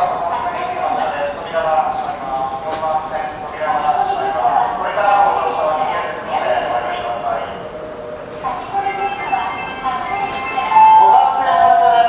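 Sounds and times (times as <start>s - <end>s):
electronic chime melody over speaker: 8.9s - 12.0s.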